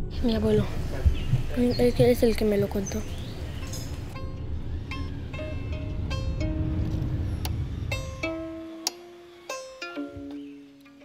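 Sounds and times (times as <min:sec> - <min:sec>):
low rumble: 0:00.0 - 0:08.8
violin strings plucked: 0:03.6 - 0:11.0.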